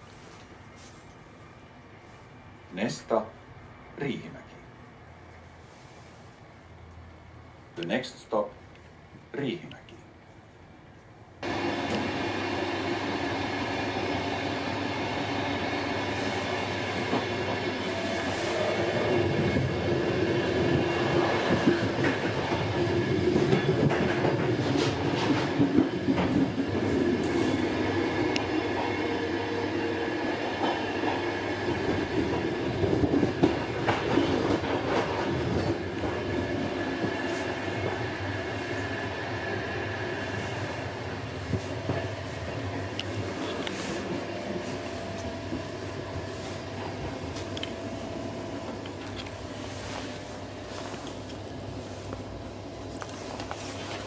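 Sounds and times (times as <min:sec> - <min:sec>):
train wheels rumbling on rails: 0:11.4 - 0:54.0.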